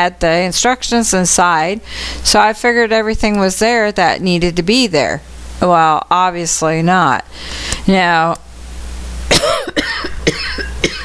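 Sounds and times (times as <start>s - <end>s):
woman coughing: 9.3s - 11.0s.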